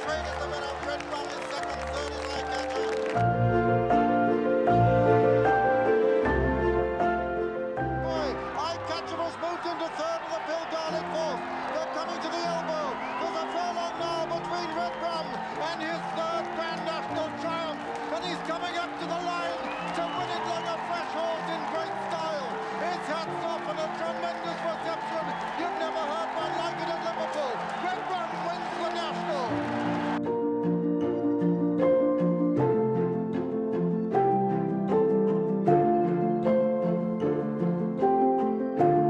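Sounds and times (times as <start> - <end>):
crowd cheering and shouting: 0.0 - 3.2, 8.0 - 30.2
background music with held notes: 0.0 - 39.0.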